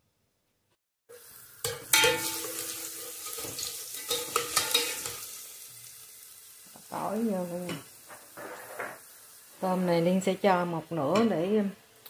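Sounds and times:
garlic sizzling in hot oil: 1.1 - 12.0.

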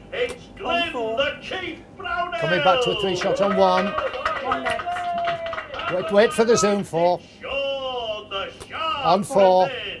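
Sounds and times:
men talking: 0.1 - 10.0.

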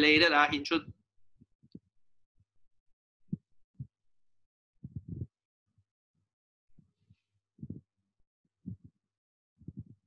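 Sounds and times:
soft low thumps: 4.8 - 5.4, 7.6 - 7.9, 8.6 - 9.0, 9.6 - 10.0.

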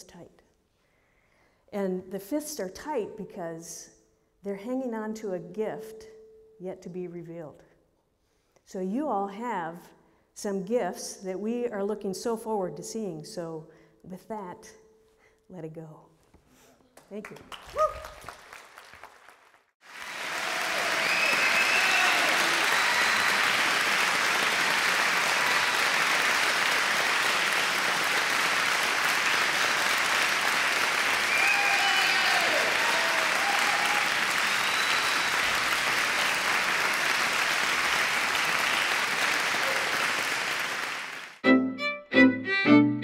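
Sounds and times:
audience applauding: 17.2 - 41.4.

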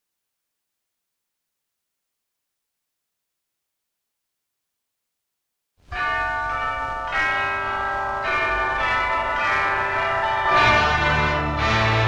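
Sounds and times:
struck bell chords ringing: 6.0 - 12.0.

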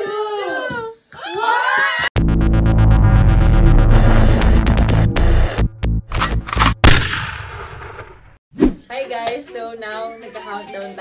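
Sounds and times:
short sound effect burst: 2.2 - 6.8.

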